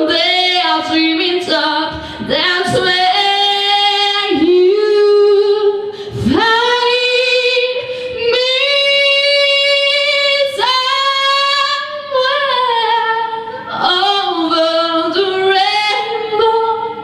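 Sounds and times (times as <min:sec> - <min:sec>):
woman singing a cappella: 0:00.0 - 0:17.0.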